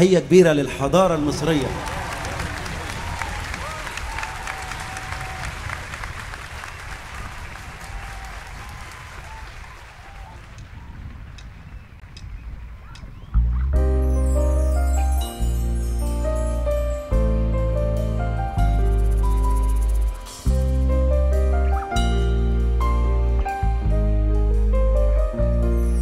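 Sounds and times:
audience calls: 0.8 - 11.7
audience applause: 0.9 - 11.8
strong bass: 13.3 - 26.0.

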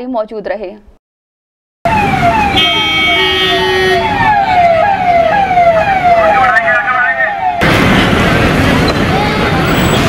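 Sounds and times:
steady siren tone: 1.9 - 7.6
police sirens wailing: 1.9 - 10.0.

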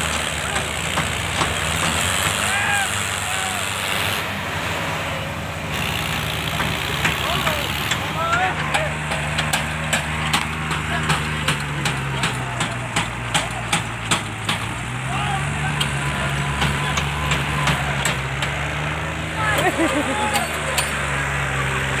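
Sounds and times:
diesel engines running: 0.0 - 22.0
people shouting: 2.2 - 4.1, 7.0 - 9.4, 14.8 - 18.5, 19.3 - 20.8.

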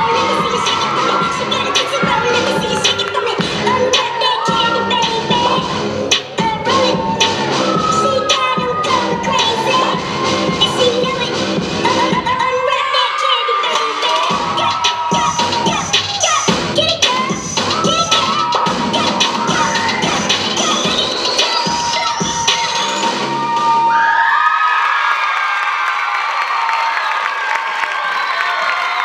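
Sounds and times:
rap dance track with beat: 0.0 - 23.8
audience cheering and shrieking: 0.0 - 29.0.

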